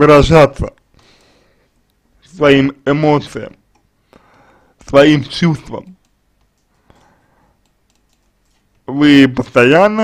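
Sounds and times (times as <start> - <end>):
man speaking: 0.0 - 0.8, 2.2 - 3.7, 4.8 - 6.0, 8.8 - 10.0
computer keyboard clicks: 5.8 - 8.9.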